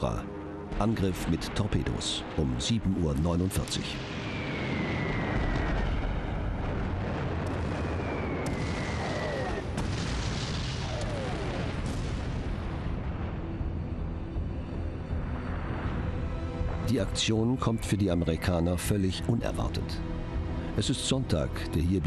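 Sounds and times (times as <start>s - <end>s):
rumble of explosions: 0.0s - 18.9s
falling bomb whistles: 3.9s - 6.7s, 7.5s - 11.8s.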